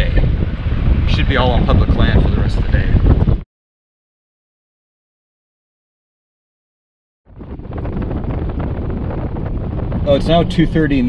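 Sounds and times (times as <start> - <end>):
wind buffeting microphone: 0.0 - 3.4, 7.3 - 11.0.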